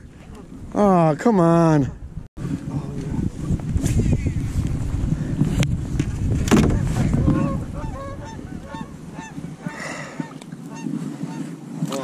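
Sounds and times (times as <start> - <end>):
knock in a boat: 6.0 - 6.9
geese honking: 6.8 - 11.5.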